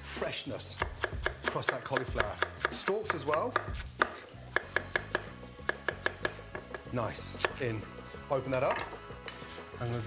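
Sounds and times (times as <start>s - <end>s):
knife striking wooden chopping board: 0.8s - 7.7s.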